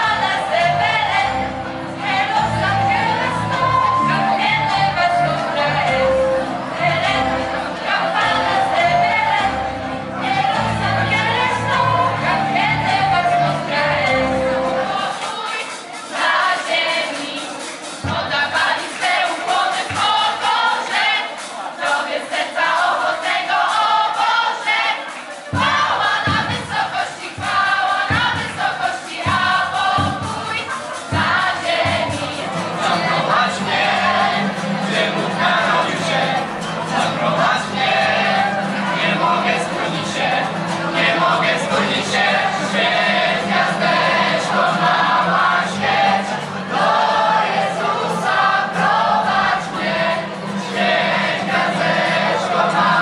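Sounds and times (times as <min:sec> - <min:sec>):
group singing a carol: 0:00.0 - 0:53.0.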